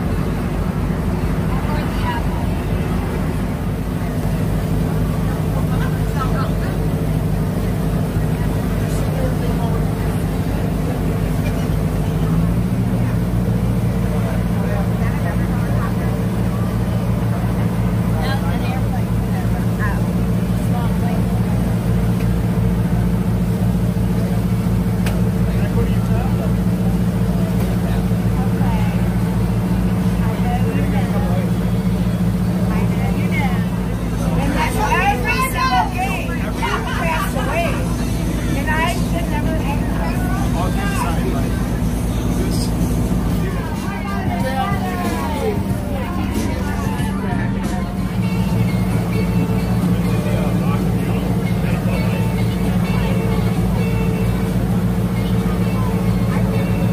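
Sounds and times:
boat engine droning: 0:00.0 - 0:56.9
voices talking: 0:00.0 - 0:56.9.

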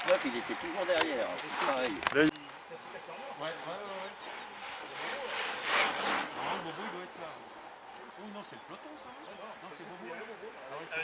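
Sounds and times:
chatter of spectators: 0:00.0 - 0:11.0.

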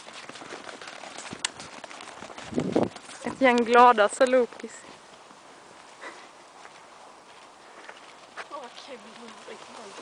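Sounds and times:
dogs galloping on sand: 0:00.0 - 0:05.2, 0:06.8 - 0:10.0.

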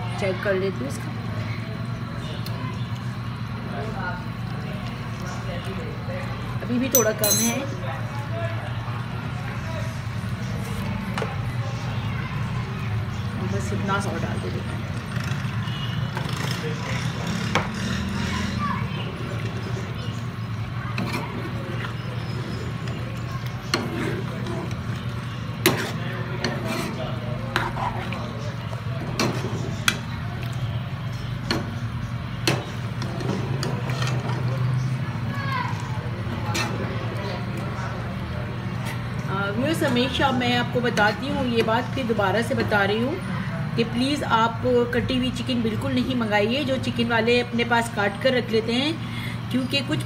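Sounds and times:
metal ladle scraping a pan: 0:25.6 - 0:27.8.

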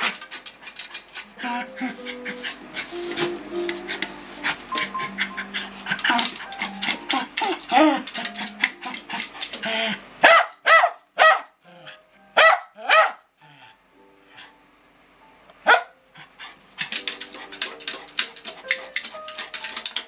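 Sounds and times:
dog barking: 0:10.2 - 0:11.6, 0:12.4 - 0:13.2, 0:15.6 - 0:15.9.

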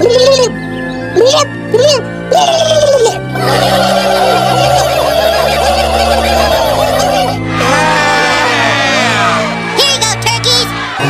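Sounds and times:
cartoon turkeys gobbling: 0:02.3 - 0:07.4.

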